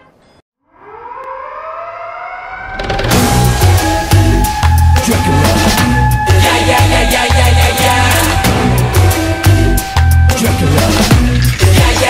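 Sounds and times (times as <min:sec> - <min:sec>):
siren-like synth tone rising: 0:00.6 - 0:11.2
pop beat with heavy drums: 0:03.1 - 0:12.0.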